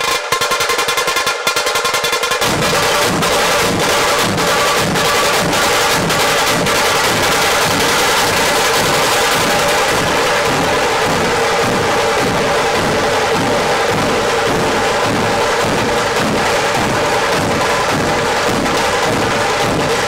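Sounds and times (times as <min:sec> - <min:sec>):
drums beaten with sticks: 0:00.0 - 0:20.0.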